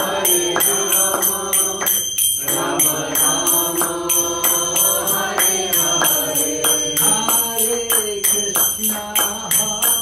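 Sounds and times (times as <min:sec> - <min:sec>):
hand cymbals struck: 0:00.0 - 0:10.0
voices chanting: 0:00.0 - 0:10.0.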